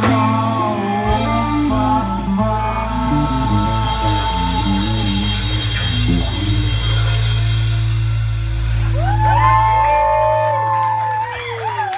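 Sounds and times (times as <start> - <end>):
audience whooping and cheering: 8.7 - 11.9.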